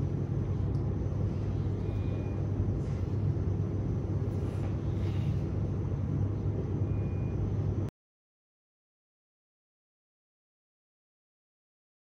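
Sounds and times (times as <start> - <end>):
low rumbling hum: 0.0 - 7.9.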